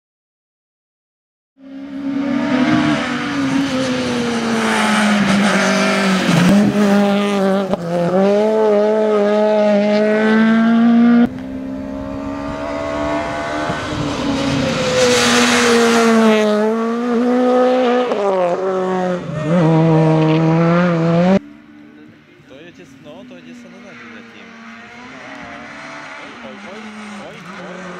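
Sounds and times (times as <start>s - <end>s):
rally car engine at high revs: 1.6s - 27.9s.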